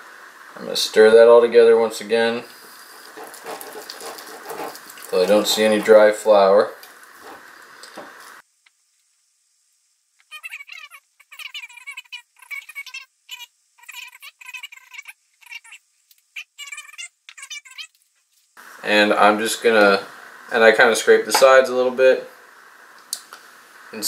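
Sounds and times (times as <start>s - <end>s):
spatula squeaking in glass jar: 10.3s - 15.8s, 16.4s - 18.0s.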